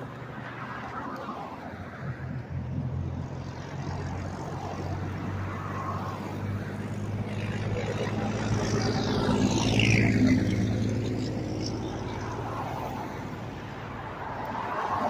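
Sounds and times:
dump truck diesel engine passing: 2.8s - 14.2s.

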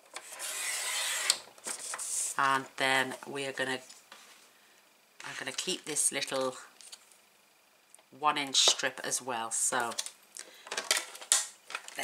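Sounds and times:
paper trimmer blade scraping: 0.2s - 2.3s.

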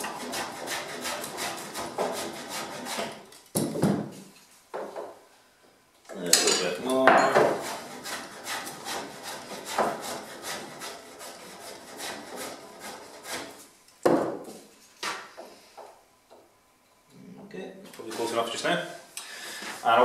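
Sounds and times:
hand plane shaving wood: 0.0s - 3.2s, 7.5s - 13.6s.

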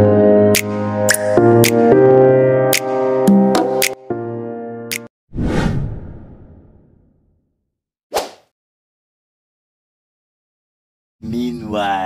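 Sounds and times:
whoosh sound effect: 5.3s - 6.9s.

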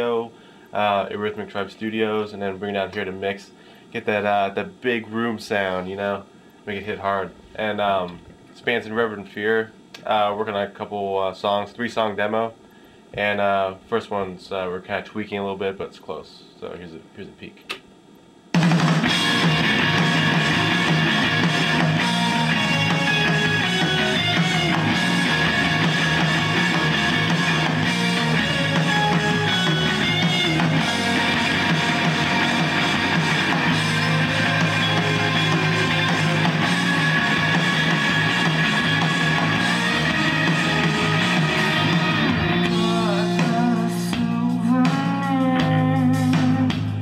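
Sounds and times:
rock band music playback: 18.6s - 47.0s.

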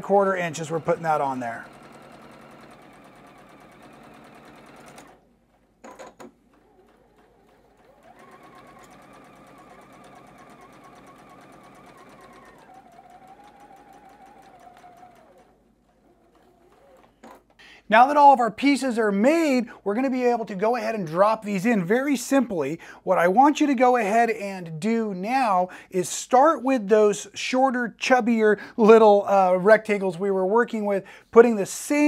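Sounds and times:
sewing machine stitching: 0.0s - 17.6s.

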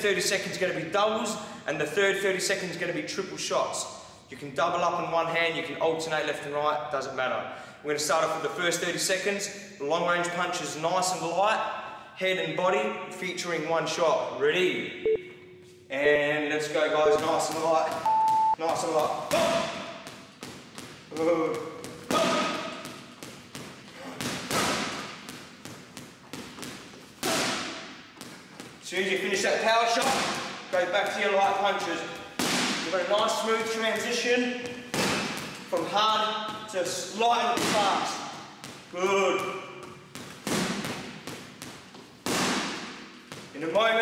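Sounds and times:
boxing gloves hitting punching bag: 18.7s - 28.7s, 29.9s - 43.5s.

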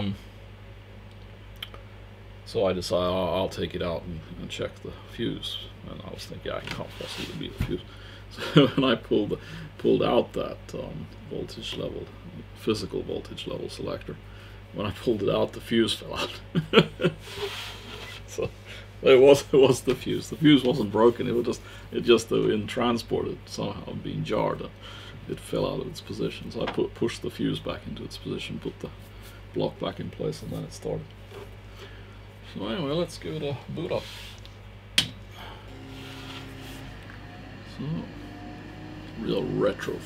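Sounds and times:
faint steady hum: 0.0s - 40.0s
man chuckling quietly: 8.4s - 9.8s, 16.1s - 18.8s.

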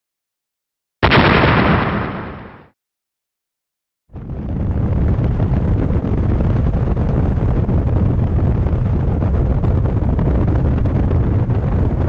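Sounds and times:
explosion blast: 1.0s - 2.8s, 4.2s - 12.0s.

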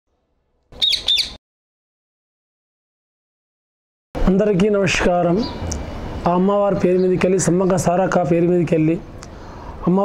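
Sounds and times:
parakeet harsh calls: 0.8s - 1.4s.

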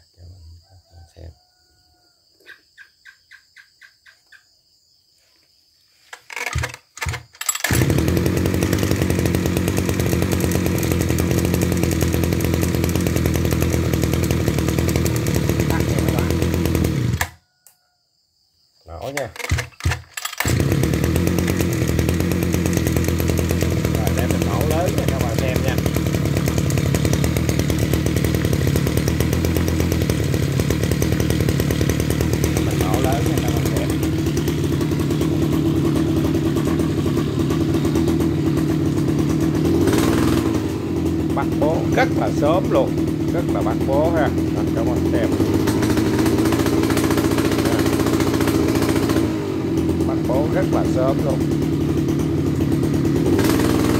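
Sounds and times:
brush cutter engine idling: 6.0s - 17.4s, 19.0s - 53.9s
recoil starter pulls: 6.1s - 17.4s, 19.0s - 53.9s.

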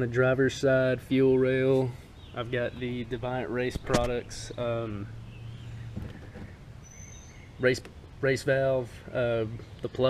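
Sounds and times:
outdoor background noise: 0.0s - 10.0s
distant bird whistle: 3.7s - 7.7s.

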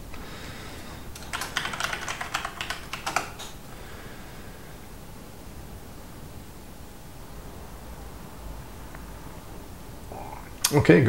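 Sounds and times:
typing on computer keyboard: 1.1s - 3.6s.

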